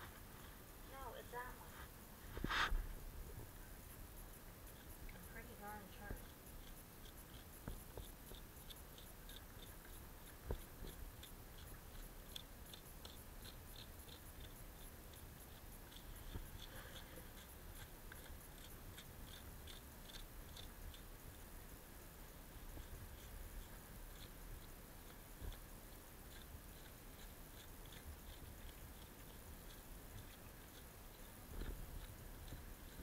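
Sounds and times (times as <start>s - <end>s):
hoof pick scratching: 4.6s - 21.6s, 22.3s - 33.0s.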